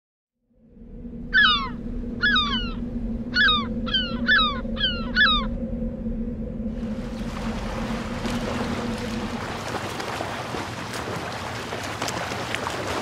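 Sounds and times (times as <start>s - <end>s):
steady low hum: 0.5s - 12.4s
seabird calling: 1.1s - 13.0s.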